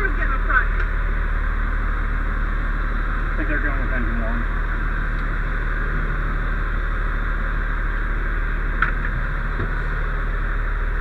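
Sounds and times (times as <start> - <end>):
engine hum and cab noise: 0.0 - 11.0.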